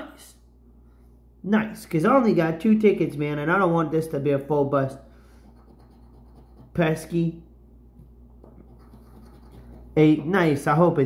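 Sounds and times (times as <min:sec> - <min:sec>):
coin scraping scratch card: 0:05.4 - 0:06.8, 0:08.6 - 0:09.9.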